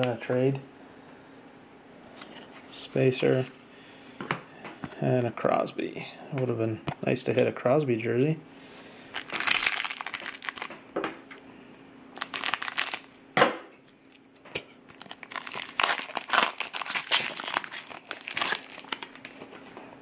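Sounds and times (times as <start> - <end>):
foil wrapper crinkling: 9.1 - 10.8, 12.2 - 13.2, 14.9 - 19.7.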